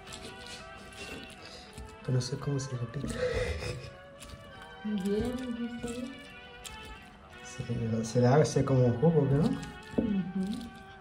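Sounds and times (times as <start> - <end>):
stone pestle knocking and grinding: 0.0 - 7.1, 9.2 - 10.9
background song: 0.0 - 11.0.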